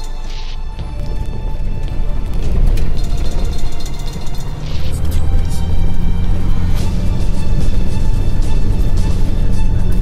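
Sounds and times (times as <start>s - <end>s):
music with percussive hits: 0.0s - 10.0s
vehicle rumbling on dirt road: 0.0s - 10.0s.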